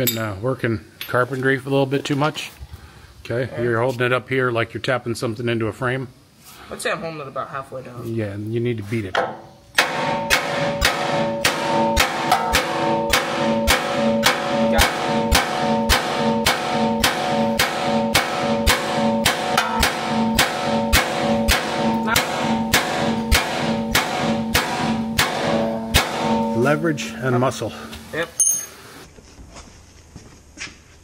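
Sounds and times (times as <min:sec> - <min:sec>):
hammer beating on metal bolt: 0:09.2 - 0:27.1.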